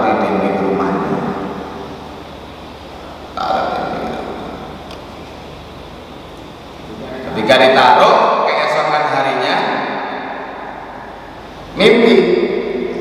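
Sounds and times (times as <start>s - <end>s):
drawn-out echoing vocal sound: 5.5s - 13.0s.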